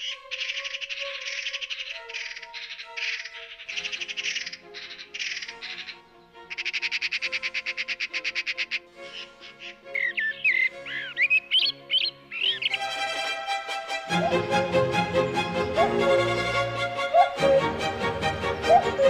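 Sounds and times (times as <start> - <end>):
songbird trills and whistles: 0.0 - 8.8, 9.9 - 12.8, 18.7 - 19.0
soft background music: 0.0 - 19.0.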